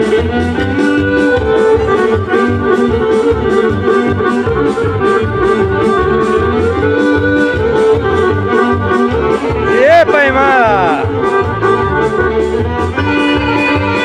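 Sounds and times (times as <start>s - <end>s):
accordion folk dance music: 0.0s - 14.0s.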